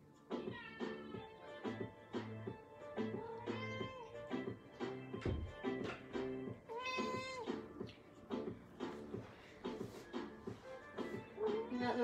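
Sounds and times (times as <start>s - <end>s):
cat meowing: 3.2s - 4.2s, 6.7s - 7.7s.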